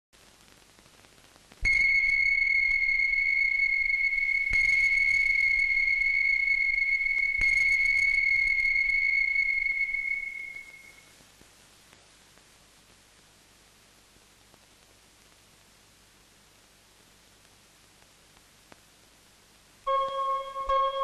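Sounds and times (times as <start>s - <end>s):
steady high-pitched tone: 1.6s - 11.1s, 19.9s - 21.0s.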